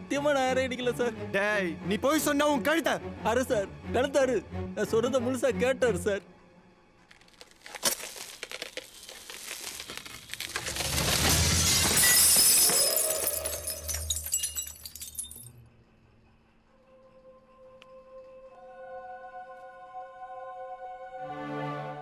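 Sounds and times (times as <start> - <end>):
glass shattering: 7.6 - 15.6.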